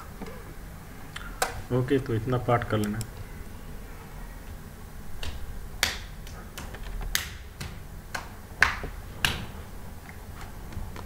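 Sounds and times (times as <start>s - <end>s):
sharp computer control clicks: 2.8s - 3.2s.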